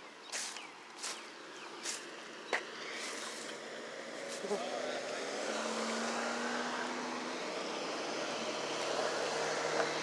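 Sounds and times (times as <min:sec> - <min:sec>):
road traffic: 0:00.0 - 0:10.0.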